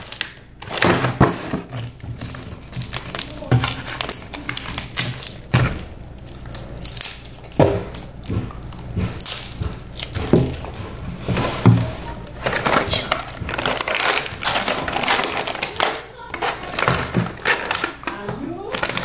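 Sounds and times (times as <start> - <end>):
crunching while eating: 0.0 - 19.0
plastic crinkling: 0.0 - 19.0.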